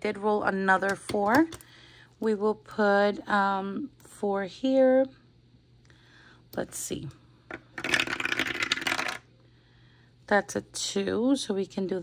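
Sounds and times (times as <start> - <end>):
die clattering through dice tower: 7.5 - 9.2.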